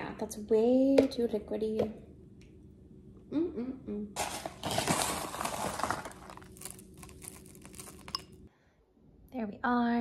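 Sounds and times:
granola crumbling crackles: 4.2 - 8.4.

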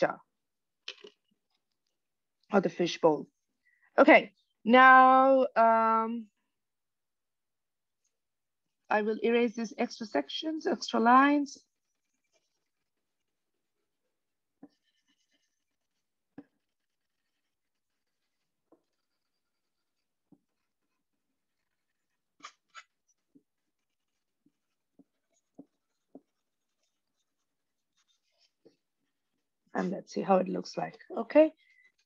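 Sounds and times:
eraser rubbing on paper: 10.9 - 13.7, 14.6 - 29.4.

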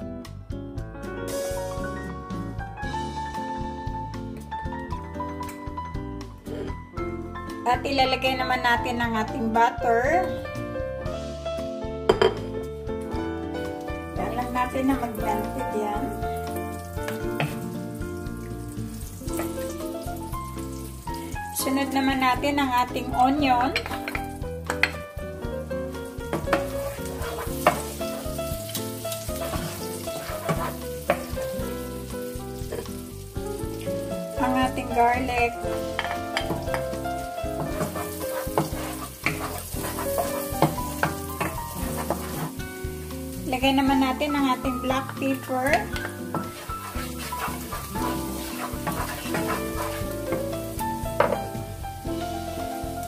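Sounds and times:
background music sustained notes: 0.0 - 53.0
butter sizzling in oil: 1.2 - 4.4, 13.0 - 53.0
wooden spatula scraping: 26.2 - 33.0, 33.9 - 51.6.

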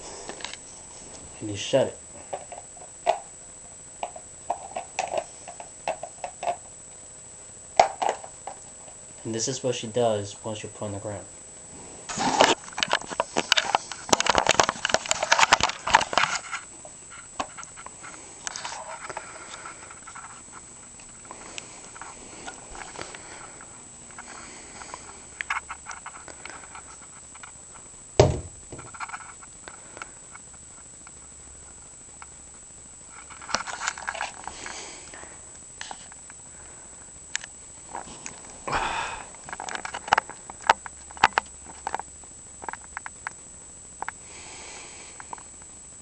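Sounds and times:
sharp knock: 28.2 - 28.6.

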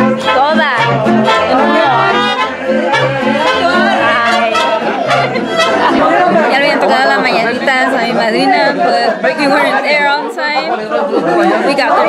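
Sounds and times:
crowd of voices talking: 0.0 - 12.0.

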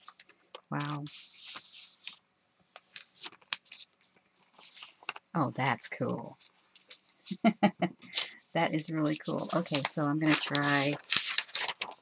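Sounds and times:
paper rustling: 0.0 - 5.3, 6.4 - 12.0.

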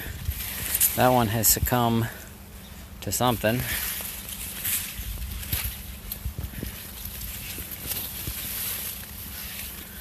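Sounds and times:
corn leaves brushing: 0.0 - 2.1, 3.1 - 10.0
footsteps on soil: 0.0 - 10.0.

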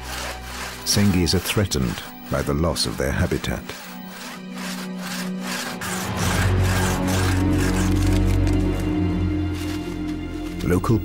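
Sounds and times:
background music with low note: 0.0 - 11.0
hand saw cutting log: 0.0 - 11.0.

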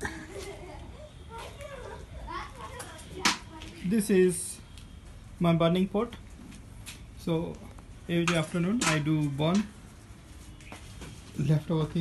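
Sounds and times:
faint children's voices playing: 0.0 - 4.4.

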